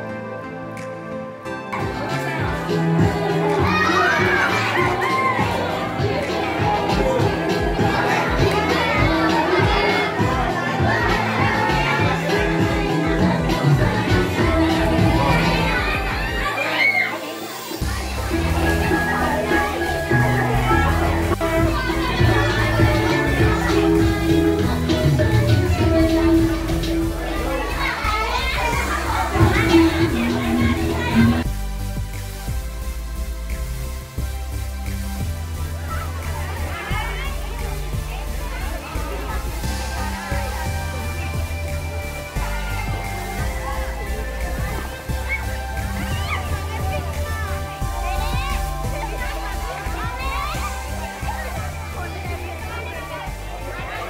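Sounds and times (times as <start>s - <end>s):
music playing: 0.0s - 54.0s
children shouting and squealing: 2.0s - 31.5s, 35.6s - 54.0s.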